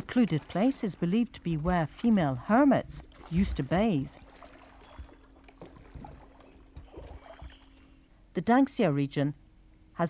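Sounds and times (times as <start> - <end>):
paddle splashes in calm water: 0.0 - 8.0.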